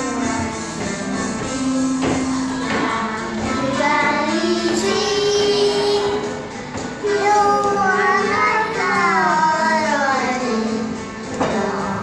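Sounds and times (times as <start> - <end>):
children singing: 0.0 - 12.0
instrumental accompaniment: 0.0 - 12.0.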